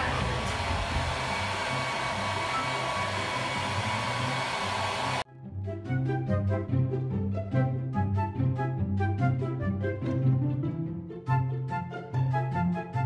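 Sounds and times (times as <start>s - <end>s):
hair dryer running: 0.0s - 5.3s
background music: 5.3s - 13.0s.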